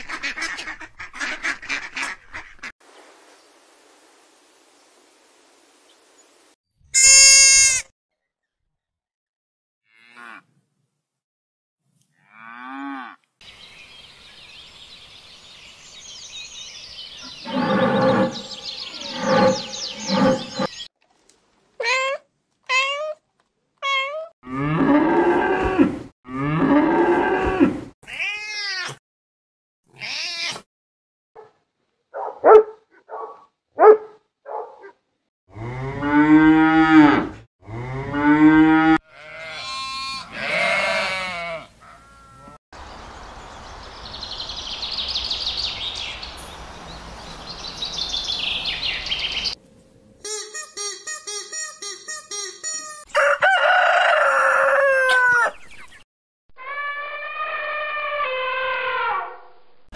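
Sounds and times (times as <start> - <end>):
cow mooing: 17.4 - 20.8, 35.5 - 42.6
cat meowing: 30.0 - 30.6.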